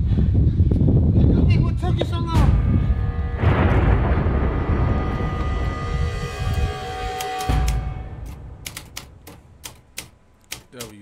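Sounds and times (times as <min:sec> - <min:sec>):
keyboard keys clacking: 0:07.2 - 0:11.0.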